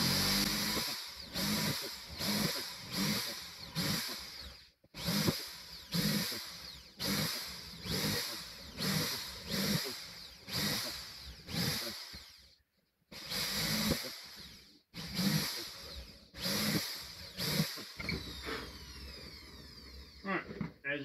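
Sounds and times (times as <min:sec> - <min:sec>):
cordless drill boring through plywood: 0:00.0 - 0:20.5.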